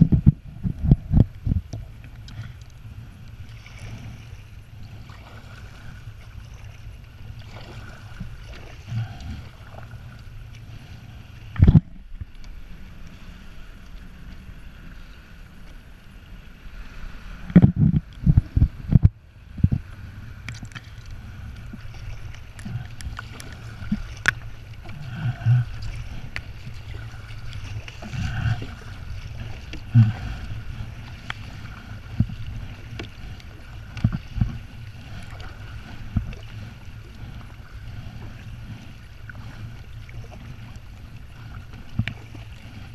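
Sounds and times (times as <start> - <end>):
paddle strokes: 0.0 - 42.9
water sloshing around kayak: 0.0 - 42.9
wind rumble on microphone: 0.0 - 42.9.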